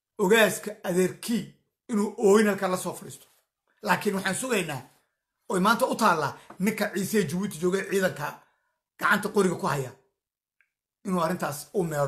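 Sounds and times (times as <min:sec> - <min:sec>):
man talking: 0:00.2 - 0:08.4, 0:09.0 - 0:10.0, 0:11.0 - 0:12.0.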